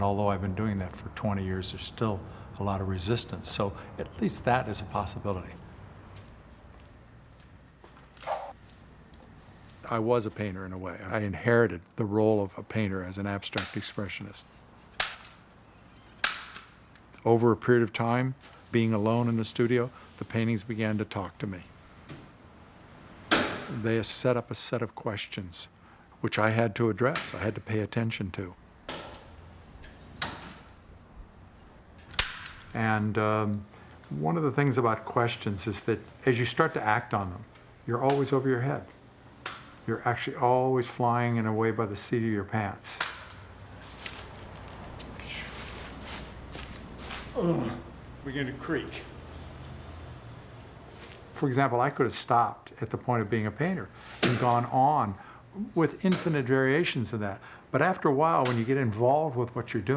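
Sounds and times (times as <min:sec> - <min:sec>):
staple gun firing: 0:32.1 - 0:32.7.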